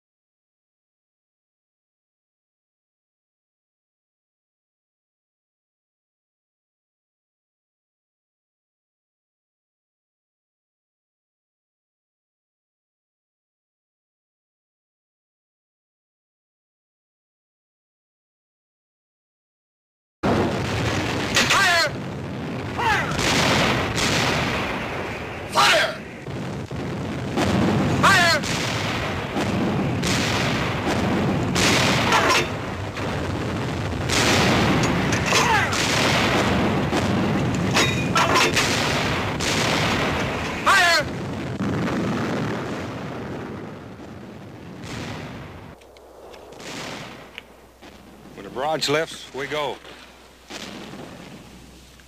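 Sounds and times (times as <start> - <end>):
heavy gun booms and blasts: 20.2 - 49.7, 50.4 - 51.7.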